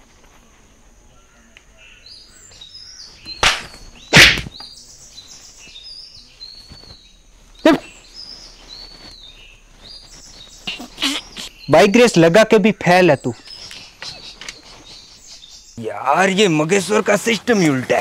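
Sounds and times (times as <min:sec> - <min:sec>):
birds chirping: 0:00.7 - 0:18.0
loud sudden sounds: 0:03.4 - 0:04.6.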